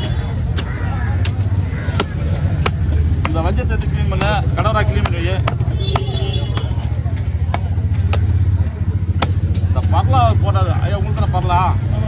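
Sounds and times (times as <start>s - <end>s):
knife chopping on wooden block: 0.5s - 8.5s, 9.1s - 9.5s.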